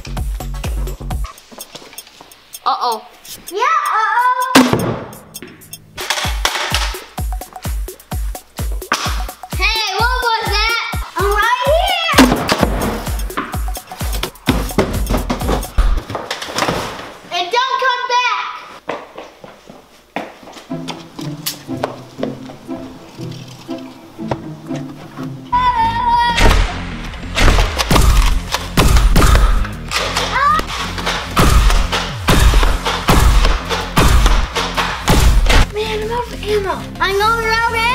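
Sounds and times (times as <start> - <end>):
background music with a beat: 0.0 - 16.1, 26.8 - 35.8
thuds: 14.2 - 17.2.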